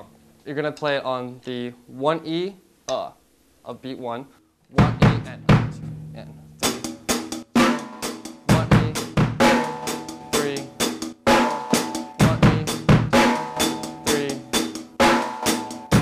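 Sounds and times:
snare backbeats: 4.7s - 5.8s
hi-hat pattern: 4.7s - 16.0s
bass drum hits: 4.8s - 10.1s.

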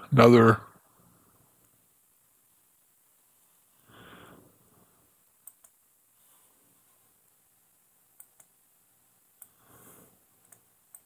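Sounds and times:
computer mouse clicks: 5.4s - 5.8s, 8.1s - 8.6s, 9.4s - 9.6s, 10.4s - 11.0s.

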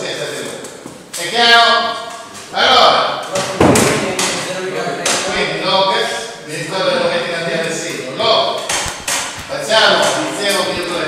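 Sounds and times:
voices in a classroom: 0.0s - 11.0s
sudden thump: 3.5s - 4.2s.

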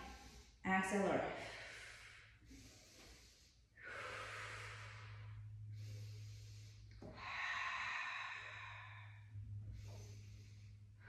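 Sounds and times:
low steady hum: 0.0s - 11.0s
woman breathing: 0.0s - 11.0s.

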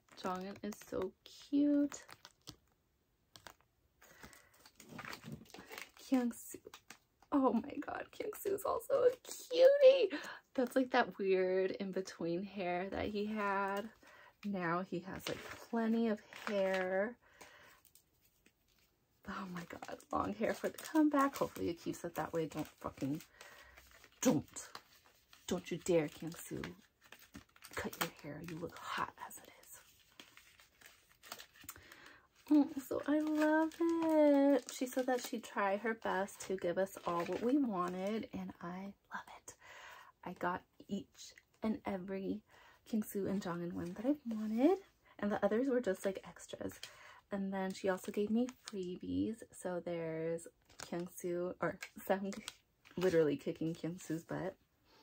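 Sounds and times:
photo cards clicking and rustling: 0.0s - 2.7s, 3.3s - 7.3s, 19.6s - 38.2s, 50.6s - 51.1s, 51.7s - 54.2s.

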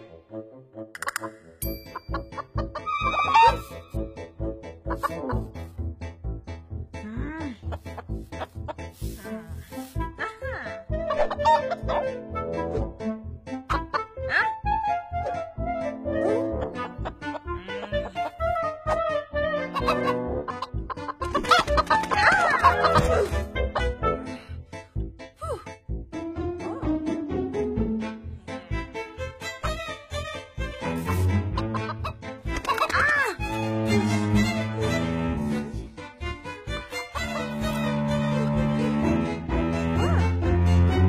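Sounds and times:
background music: 0.0s - 41.0s
cartoon hen clucking: 11.0s - 12.0s, 19.7s - 23.2s
hen clucking: 19.7s - 21.8s.

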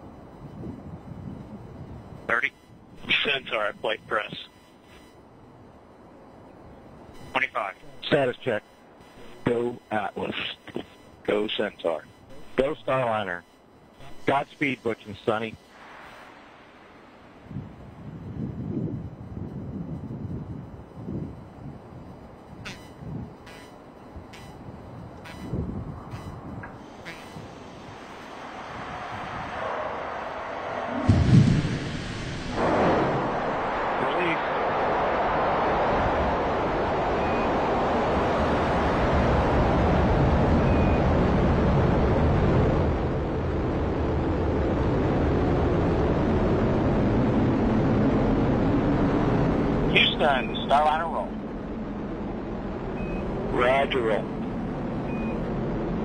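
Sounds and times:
rocket engine roar: 24.9s - 56.0s
rocket engine ignition burst: 31.0s - 34.1s.

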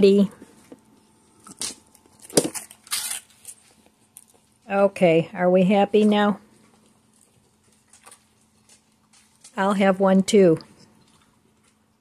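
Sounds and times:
dog crunching a snack: 0.3s - 4.6s, 6.5s - 9.6s, 10.6s - 12.0s.

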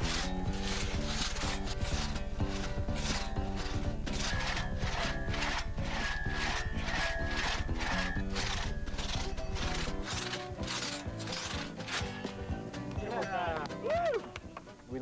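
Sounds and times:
crosscut saw rasping through log: 0.0s - 12.9s
background music: 0.0s - 15.0s.

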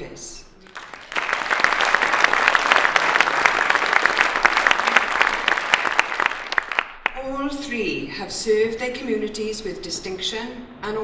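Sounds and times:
audience applauding: 0.6s - 7.2s.

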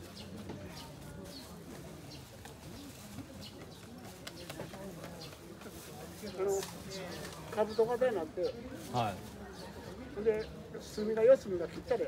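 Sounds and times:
faint murmur of voices: 0.0s - 12.0s.

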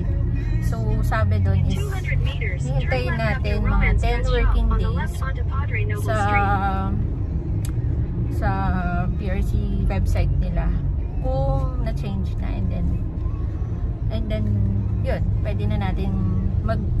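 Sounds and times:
woman talking: 0.0s - 7.1s, 8.3s - 13.0s, 14.1s - 17.0s.

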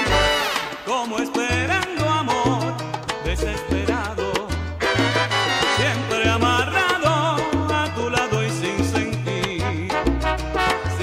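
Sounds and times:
salsa band playing: 0.0s - 11.0s.

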